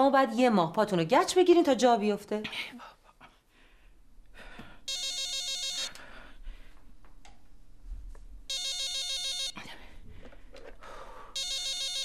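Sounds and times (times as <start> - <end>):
cordless phone ringing: 4.8 - 6.1, 8.5 - 9.6, 11.3 - 12.0.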